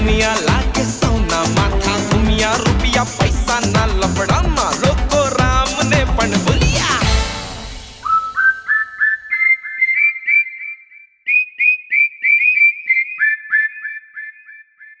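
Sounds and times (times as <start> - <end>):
dance music chord: 0.0 - 8.0
person whistling a tune: 8.0 - 14.0.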